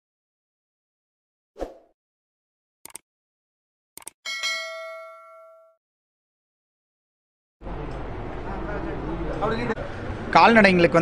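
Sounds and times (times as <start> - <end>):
notification bell ding: 4.3 - 5.8.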